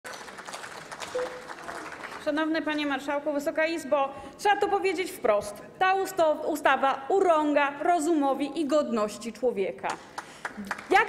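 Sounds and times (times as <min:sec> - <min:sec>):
small group applauding: 0:00.0 - 0:02.7, 0:09.9 - 0:11.0.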